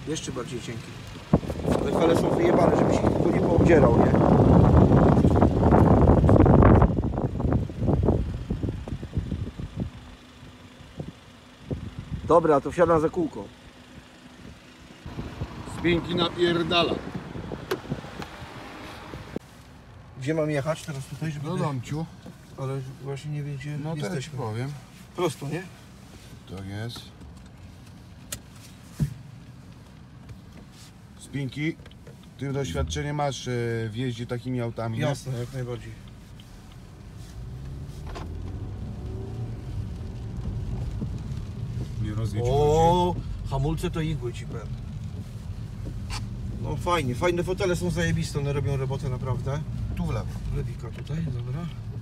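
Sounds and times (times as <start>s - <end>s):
car engine and road hum: 0.0s - 52.0s
outdoor wind noise: 0.0s - 52.0s
car door shutting: 17.1s - 18.4s, 38.0s - 38.5s
handling rustle: 24.1s - 33.2s.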